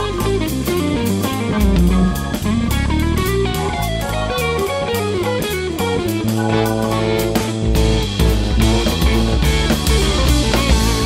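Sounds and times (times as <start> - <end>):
bass lines: 0.0 - 11.0
busy drum kit: 0.0 - 11.0
electric guitar: 0.0 - 11.0
keyboards: 0.0 - 11.0.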